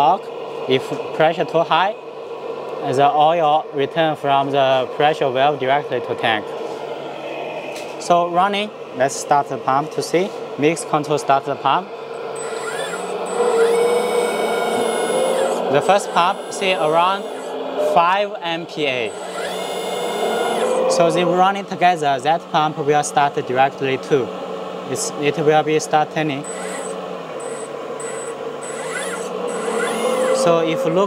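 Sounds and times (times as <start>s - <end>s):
hydraulic pump whining: 11.9s - 31.0s.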